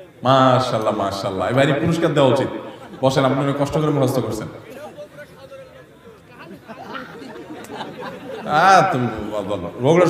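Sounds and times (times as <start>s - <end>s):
quiet indistinct voices talking: 0.0s - 10.0s.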